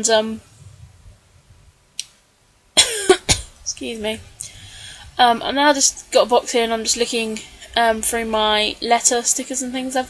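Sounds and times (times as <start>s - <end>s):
woman coughing: 2.8s - 3.6s.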